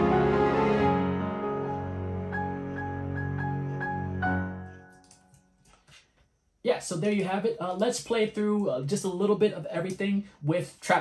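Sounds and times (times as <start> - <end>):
sustained string chords: 0.0 - 4.8.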